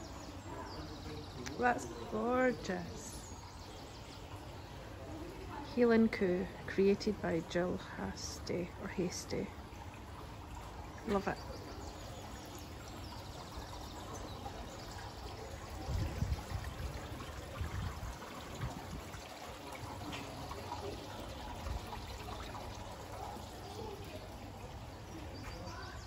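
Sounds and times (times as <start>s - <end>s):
water trickling and pouring: 0.0s - 26.0s.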